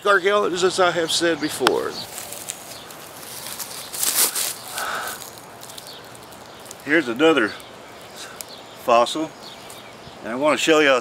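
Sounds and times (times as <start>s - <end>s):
footsteps in dry leaves: 1.8s - 8.8s, 9.4s - 10.0s.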